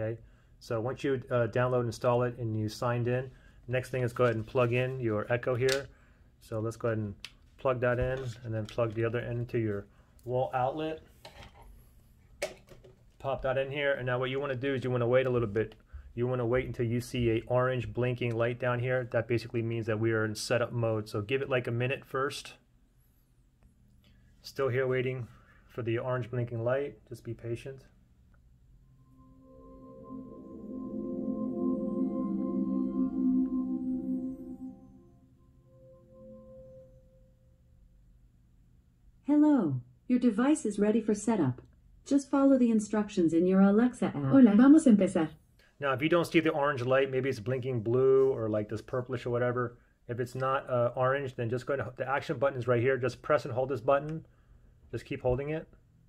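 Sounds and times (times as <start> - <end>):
smart speaker start-up chime: 28.8 - 37.7.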